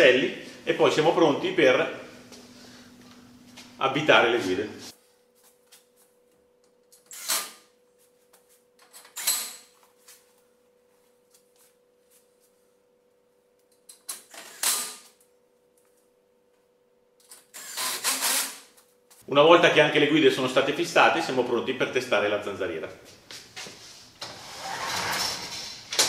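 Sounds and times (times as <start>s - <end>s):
cordless drill driving screws: 17.6s - 18.6s.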